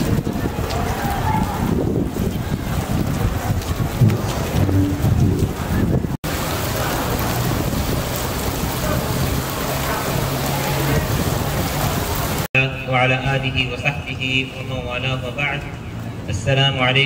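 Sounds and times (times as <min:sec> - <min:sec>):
people chattering: 0:00.0 - 0:12.4.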